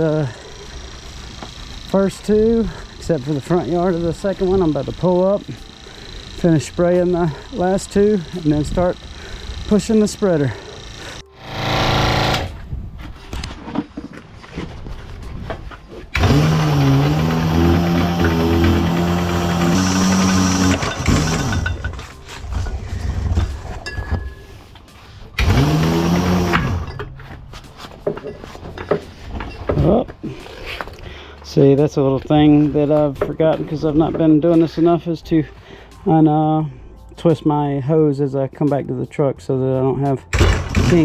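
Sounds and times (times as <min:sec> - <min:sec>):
electric hose reel motor: 0:00.0 - 0:12.7, 0:16.0 - 0:24.0, 0:25.0 - 0:31.0.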